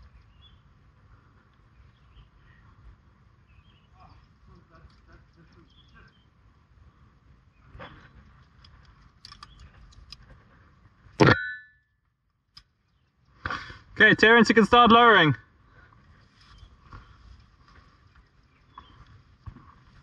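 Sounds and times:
loud metallic clank: 11.2s - 11.7s.

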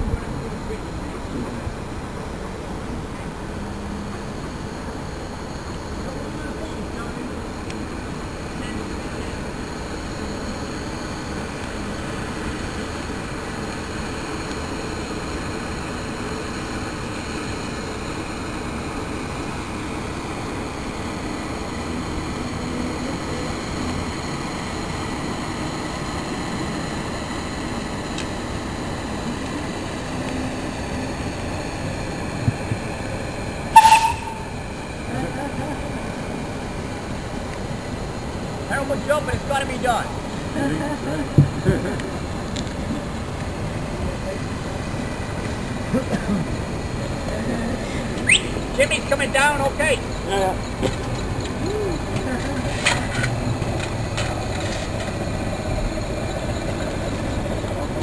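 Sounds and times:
steam engine and boiler running: 0.0s - 58.0s
loud sharp sound: 33.8s - 34.6s.

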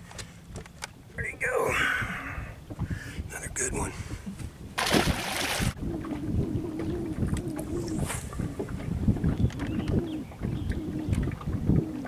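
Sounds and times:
wind rumbling on microphone: 1.4s - 12.0s.

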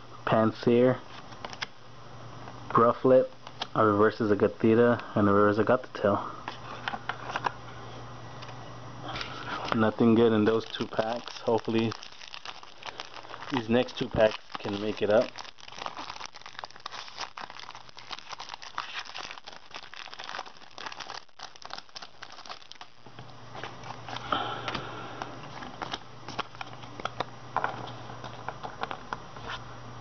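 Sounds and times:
steady low hum: 0.0s - 30.0s
foil wrappers crinkling: 9.1s - 24.8s.

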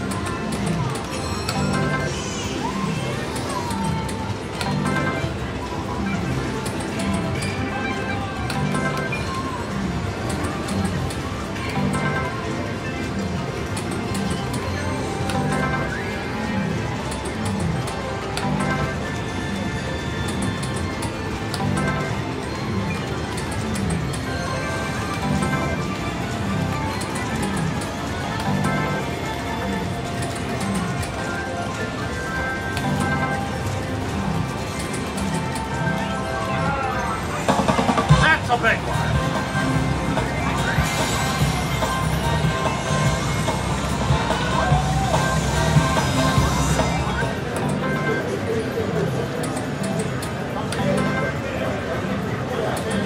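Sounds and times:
electronic slot machine sounds: 0.0s - 53.0s.

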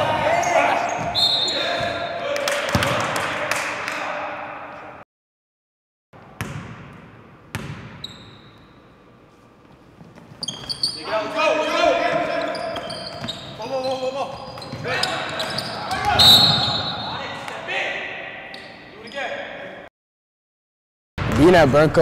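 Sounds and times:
players' voices: 0.0s - 5.0s, 10.9s - 19.8s
sneaker squeaks: 0.1s - 2.1s, 7.5s - 17.4s, 18.5s - 19.6s.

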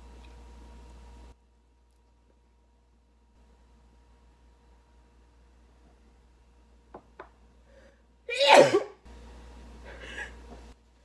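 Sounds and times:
woman sneezing: 8.3s - 9.0s.

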